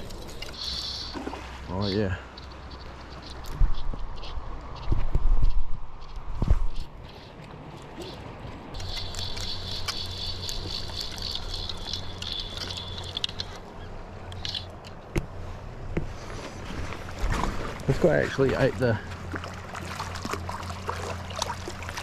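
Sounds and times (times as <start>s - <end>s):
fly reel ratchet clicking: 8.8s - 13.5s.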